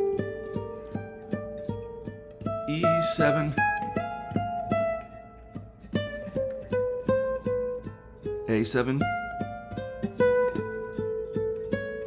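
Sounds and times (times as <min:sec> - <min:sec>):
classical guitar plucked notes: 0:00.0 - 0:12.0.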